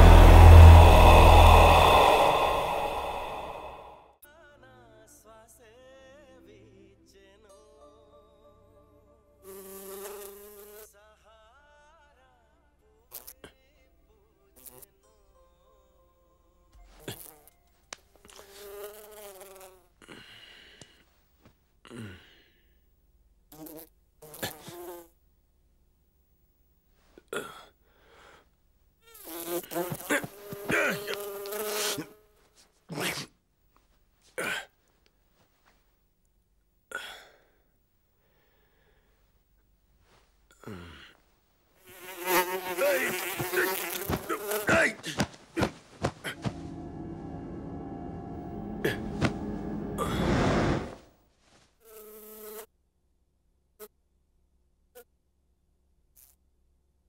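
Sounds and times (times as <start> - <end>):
steady hum: 0.0 - 4.1, 44.1 - 51.0
housefly buzzing: 9.5 - 10.9, 17.0 - 17.6, 18.3 - 19.8, 23.5 - 25.1, 29.0 - 32.4, 41.8 - 46.6, 51.8 - 52.7
pillow swishing and thumping: 45.0 - 46.4.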